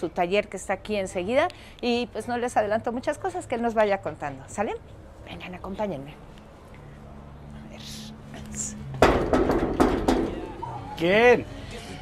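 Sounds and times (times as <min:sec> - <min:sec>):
fist knocking on metal door: 0:09.0 - 0:10.4.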